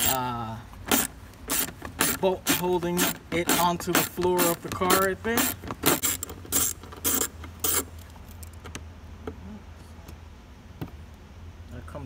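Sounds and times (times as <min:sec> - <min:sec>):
socket ratchet clicking: 0:00.8 - 0:08.6.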